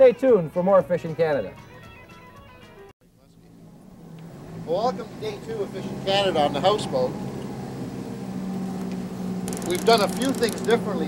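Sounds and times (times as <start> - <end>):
boat engine humming: 3.2 - 11.0.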